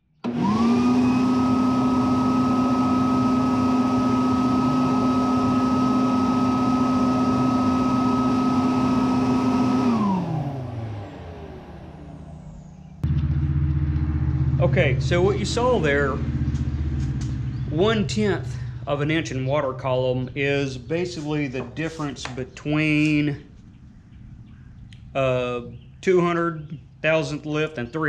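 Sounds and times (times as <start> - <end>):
motor whine: 0.1 - 26.0
steady low hum: 10.4 - 28.0.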